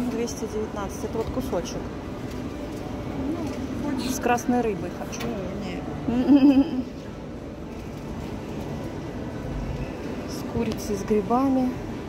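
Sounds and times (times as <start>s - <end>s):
low indoor background hum: 0.0s - 12.0s.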